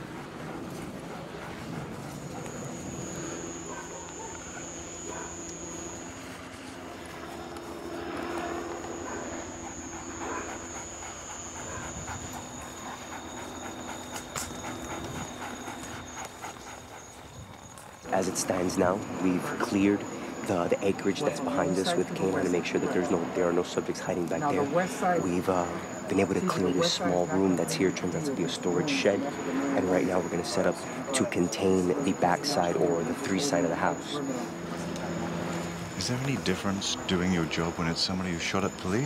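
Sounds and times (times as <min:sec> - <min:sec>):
dogs panting: 0:00.0 - 0:39.0.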